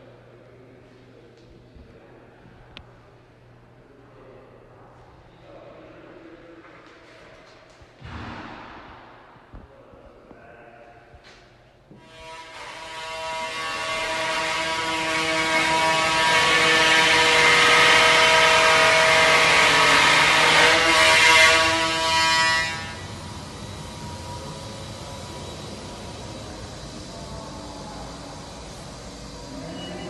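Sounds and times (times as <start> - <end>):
mechanical drone with whine: 12.2 - 30.0.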